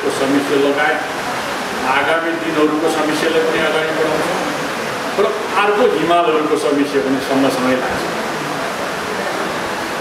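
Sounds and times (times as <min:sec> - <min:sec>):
speech: 0:01.8 - 0:04.6, 0:05.2 - 0:08.2.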